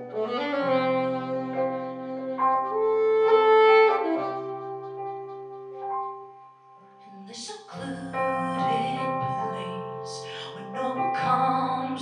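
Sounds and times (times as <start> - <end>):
alto saxophone melody: 0.0 - 6.5
sustained keyboard chords: 0.0 - 12.0.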